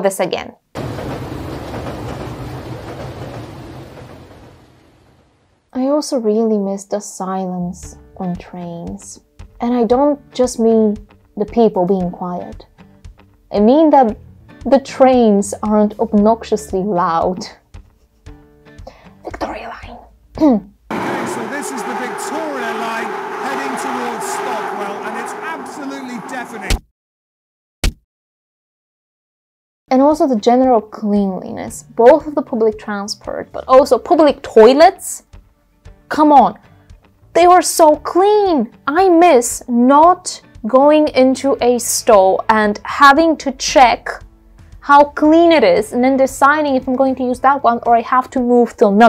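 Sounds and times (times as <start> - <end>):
train rumbling past: 0.8 - 5.6, 20.9 - 26.8
train hiss: 20.9 - 26.7
man speaking: 21.0 - 26.8.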